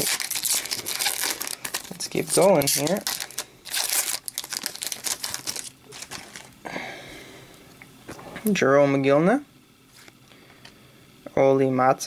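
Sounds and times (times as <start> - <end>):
cards rustling: 0.0 - 6.6
plastic wrapper crinkling: 0.0 - 6.6.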